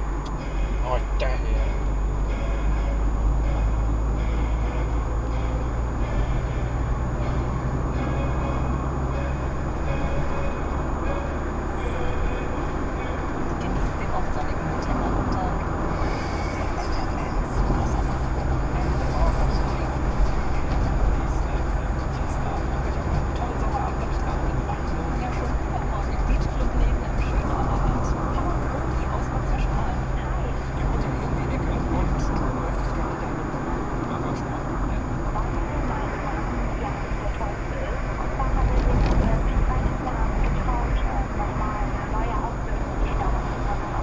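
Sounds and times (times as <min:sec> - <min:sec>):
car tyre and engine rumble: 0:00.0 - 0:44.0
indistinct talk: 0:00.0 - 0:44.0.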